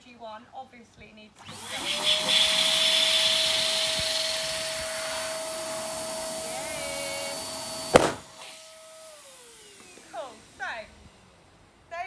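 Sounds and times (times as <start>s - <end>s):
balloon pump motor whining: 1.4s - 10.8s
balloon bursting: 7.9s - 8.4s.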